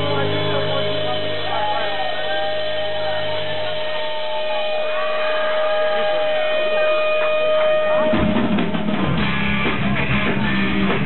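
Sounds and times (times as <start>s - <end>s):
band holding a sustained note: 0.0s - 8.6s
crowd voices: 0.0s - 11.0s.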